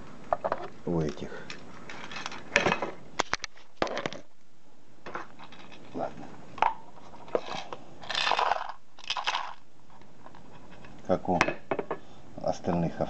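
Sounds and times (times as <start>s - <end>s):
small parts rattling and rustling: 0.3s - 4.3s, 5.0s - 6.1s, 7.0s - 11.0s.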